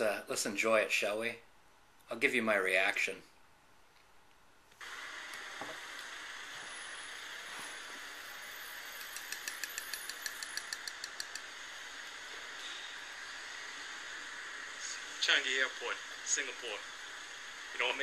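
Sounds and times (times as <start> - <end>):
steady hiss: 4.7 - 18.0
light even ticks: 9.0 - 11.5.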